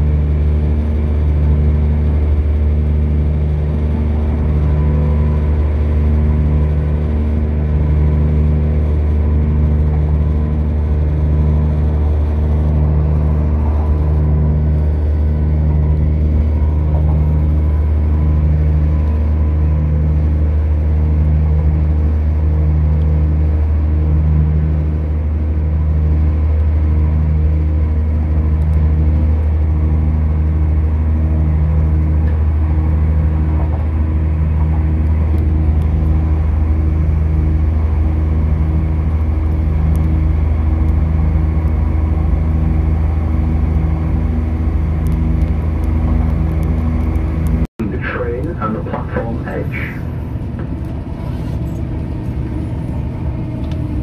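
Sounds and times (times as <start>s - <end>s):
pulsing low hum: 0.0s - 54.0s
train engine and wheels drone: 0.0s - 54.0s.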